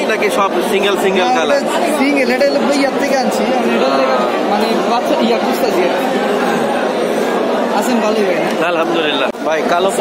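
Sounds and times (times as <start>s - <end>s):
overlapping market chatter: 0.0s - 10.0s.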